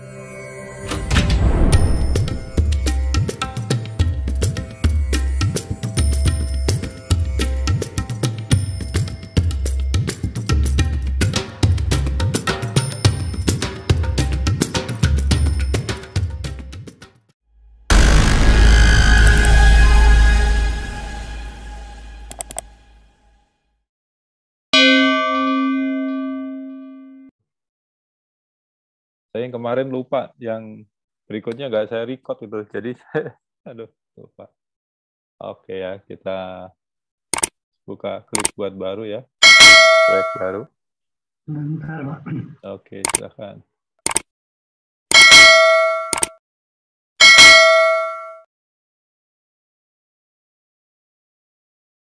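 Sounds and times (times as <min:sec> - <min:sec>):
struck bell ringing: 0:08.5 - 0:10.8, 0:39.4 - 0:40.6, 0:47.2 - 0:48.4
short sharp click: 0:22.3 - 0:22.7, 0:38.4 - 0:38.6, 0:46.1 - 0:46.4.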